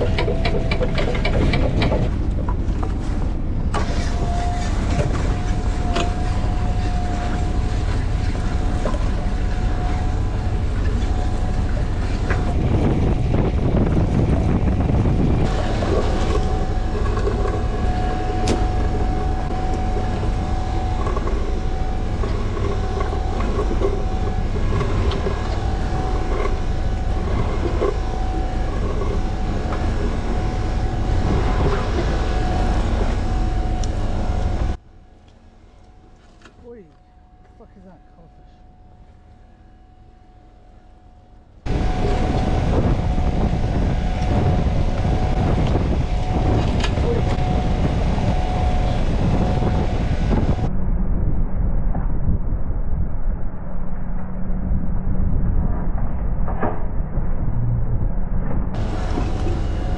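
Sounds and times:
net hauler whining: 0.0 - 50.7, 58.7 - 59.9
boat engine rumbling: 0.0 - 59.9.

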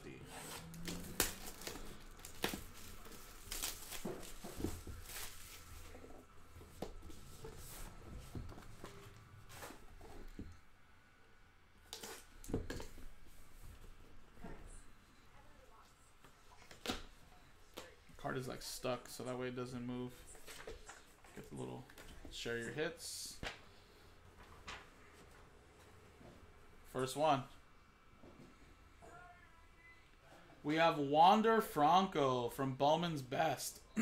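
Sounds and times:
plastic wrap tearing and crumpling: 0.5 - 5.8.

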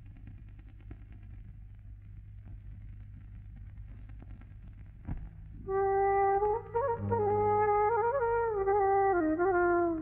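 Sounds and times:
film soundtrack hum and hiss: 0.0 - 10.0.

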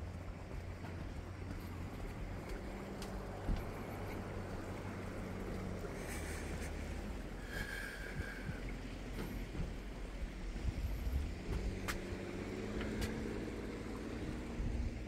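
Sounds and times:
faint steady drone: 0.0 - 15.0
footsteps on footbridge deck: 0.0 - 15.0
wind rumbling on microphone: 0.0 - 15.0.

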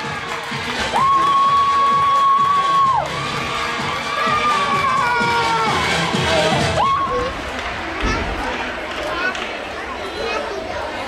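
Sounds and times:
indistinct chatter in hall: 0.0 - 11.0.

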